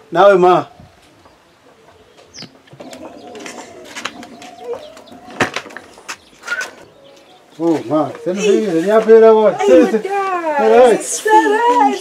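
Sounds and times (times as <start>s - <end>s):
low steady bird call: 0.0s - 8.7s
high bird chirp: 1.2s - 8.7s.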